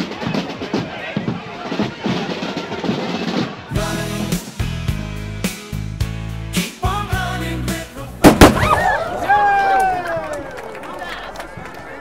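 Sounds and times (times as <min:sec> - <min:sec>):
sharp loud bangs: 0:08.2 - 0:09.0.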